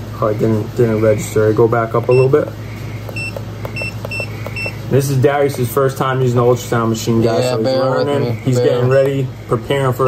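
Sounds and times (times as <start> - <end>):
steady low hum: 0.0 - 10.0
short high keypad beeps: 3.1 - 4.8.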